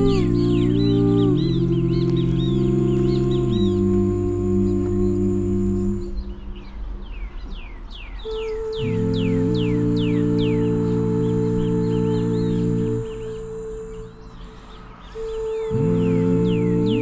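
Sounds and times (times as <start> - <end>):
steady high tone: 0.0 - 7.5, 8.2 - 17.0
ambient music sustained chords: 0.0 - 17.0.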